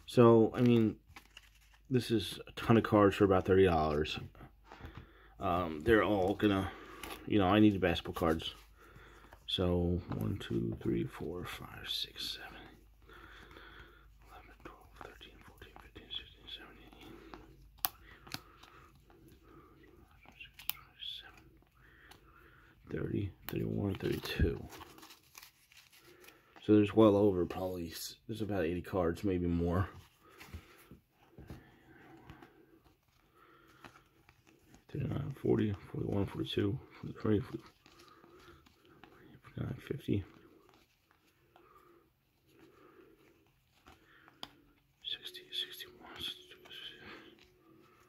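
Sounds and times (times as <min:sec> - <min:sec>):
cards rustling and ticking: 0:00.0 - 0:48.0
faint whispering: 0:09.4 - 0:25.2, 0:34.7 - 0:48.0.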